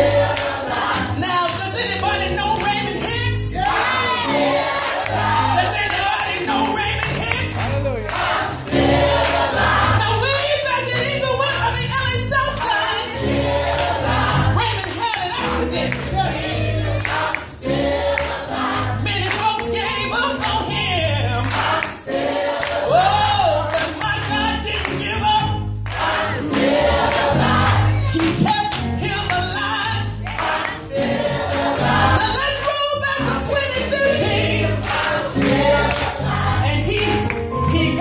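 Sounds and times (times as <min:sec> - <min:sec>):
gospel choir singing: 0:00.0 - 0:38.0.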